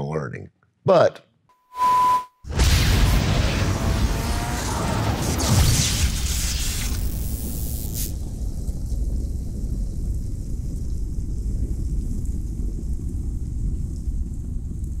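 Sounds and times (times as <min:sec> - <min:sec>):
bright hiss: 0:05.5 - 0:08.2
deep steady rumble: 0:08.2 - 0:15.0.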